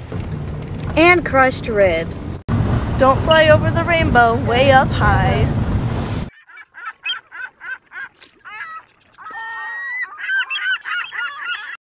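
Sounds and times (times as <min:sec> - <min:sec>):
geese honking: 0:06.3 - 0:11.8.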